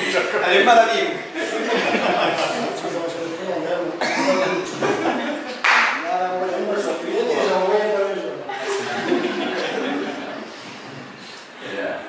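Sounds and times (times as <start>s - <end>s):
people talking: 0.0s - 12.0s
short cough: 4.0s - 4.7s.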